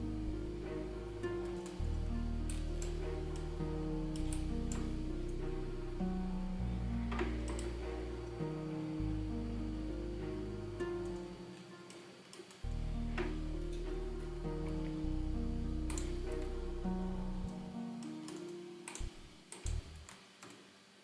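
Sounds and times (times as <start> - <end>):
deep low synth layer: 0.0 - 11.5, 12.6 - 17.9
synthesizer held notes: 0.0 - 11.9, 12.6 - 20.0.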